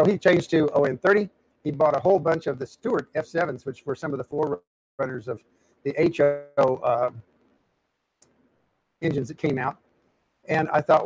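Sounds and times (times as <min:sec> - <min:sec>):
man's voice: 0:00.0 - 0:07.2, 0:09.0 - 0:09.7, 0:10.5 - 0:11.0.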